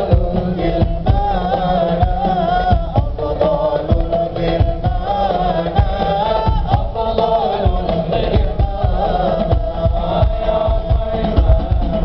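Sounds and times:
choir singing devotional song: 0.0s - 12.0s
steady drum beat: 0.0s - 12.0s.

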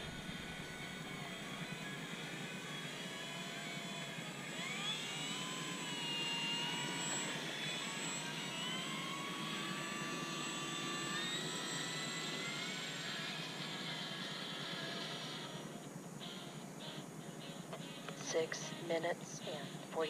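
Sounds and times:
electric motor and propeller whine: 0.0s - 20.0s.

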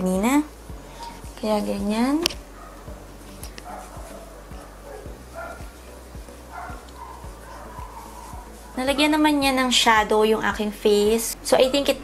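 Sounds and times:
dog barking faintly: 2.4s - 3.0s, 3.6s - 9.6s.

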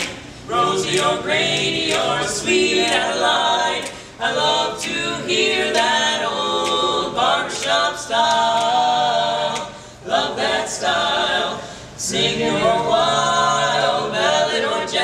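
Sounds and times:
male quartet singing a cappella: 0.0s - 15.0s.

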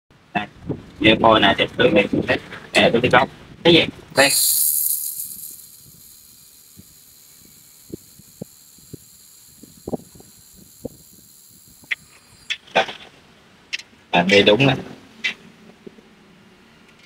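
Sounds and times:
sharp ticks of welding spatter: 4.2s - 12.7s
shielding gas hissing: 4.2s - 13.0s.

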